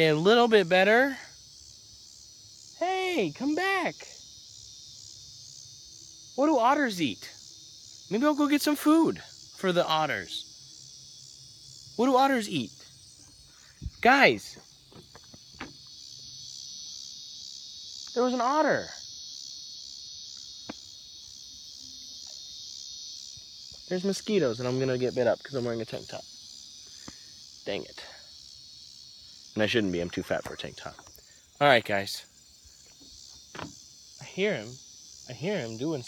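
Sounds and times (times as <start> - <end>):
crickets chirping: 0.0 - 36.0
insect chorus drone: 0.0 - 36.0.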